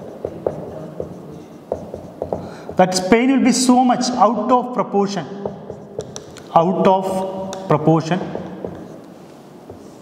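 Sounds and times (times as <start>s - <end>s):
marker writing on whiteboard: 0.0s - 4.1s, 5.0s - 10.0s.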